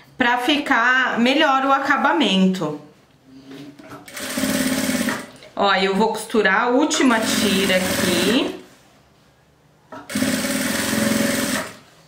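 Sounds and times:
sewing machine stitching: 4.1 - 5.3, 7.2 - 8.5, 10.0 - 11.9.

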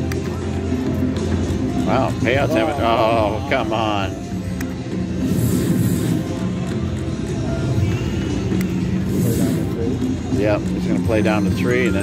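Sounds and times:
casino background din: 0.0 - 12.0
slot machine electronic music: 0.0 - 12.0
slot machine reel-spin sounds: 5.0 - 7.2, 8.8 - 12.0.

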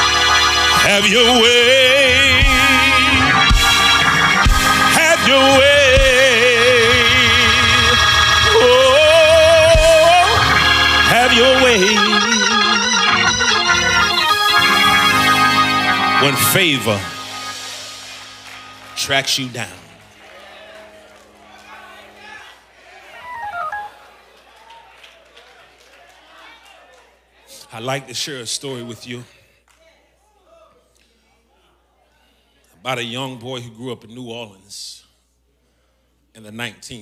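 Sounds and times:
organ chords: 0.0 - 24.4
man singing with vibrato: 0.7 - 3.6, 4.7 - 14.0
short electronic beeps: 23.2 - 24.0.

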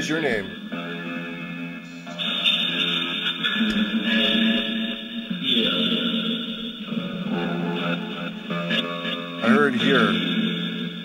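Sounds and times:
overlapping tones from loudspeaker: 0.0 - 11.0.

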